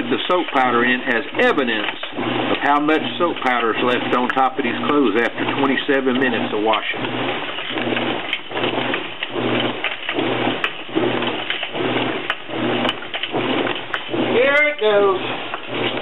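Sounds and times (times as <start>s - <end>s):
washing machine running: 0.0s - 16.0s.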